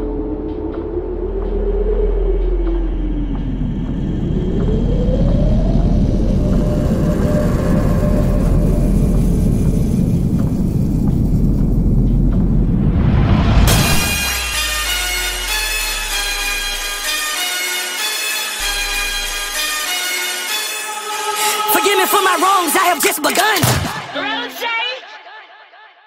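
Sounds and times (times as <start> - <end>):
rumbling synth bass: 0.0 - 17.4, 18.6 - 20.0.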